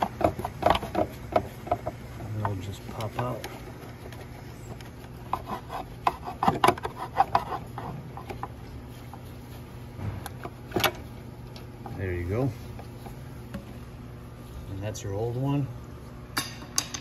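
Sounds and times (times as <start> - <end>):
metal rattling clicks and scrapes: 0.0 - 8.6.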